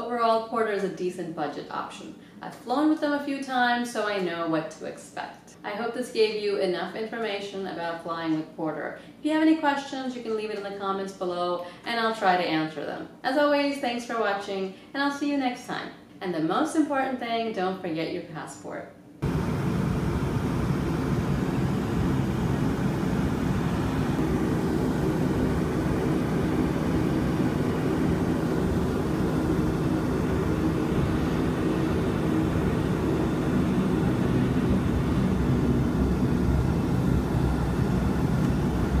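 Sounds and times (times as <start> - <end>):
turboprop engines droning in cabin: 19.2 - 39.0.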